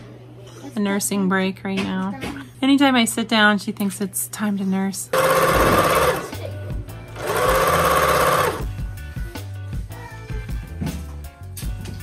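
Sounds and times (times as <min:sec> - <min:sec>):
electric sewing machine stitching: 0:05.1 - 0:06.5, 0:07.2 - 0:08.8.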